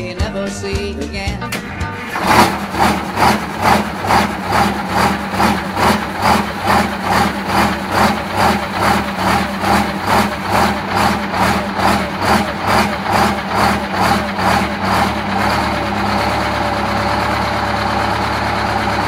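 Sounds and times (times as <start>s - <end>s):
diesel bus engine idling: 1.4s - 19.0s.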